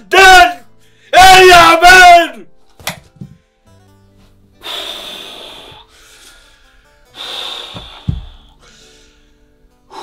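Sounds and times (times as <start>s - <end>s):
soft background music: 0.0s - 10.0s.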